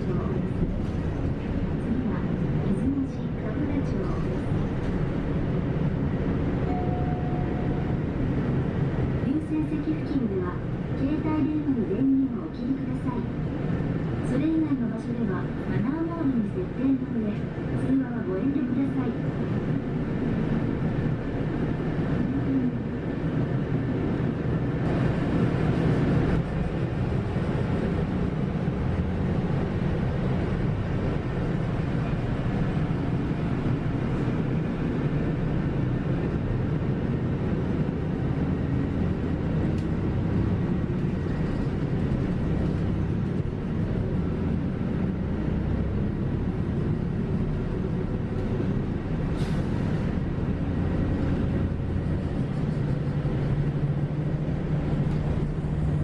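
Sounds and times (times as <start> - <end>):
bus engine running: 0.0 - 56.0
road noise: 0.0 - 56.0.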